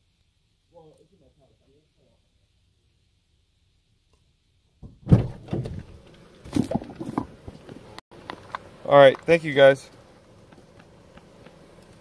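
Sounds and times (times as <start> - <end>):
loud thump: 4.8 - 6.0.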